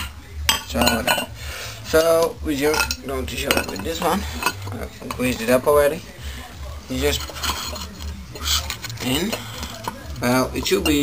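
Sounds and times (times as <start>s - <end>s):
metal parts clinking on concrete: 2.0s - 5.4s.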